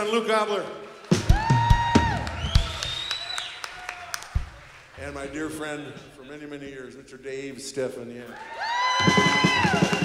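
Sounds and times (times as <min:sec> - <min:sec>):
audience applause: 0:00.7 - 0:05.6, 0:08.2 - 0:10.0
long whistles: 0:02.2 - 0:03.8.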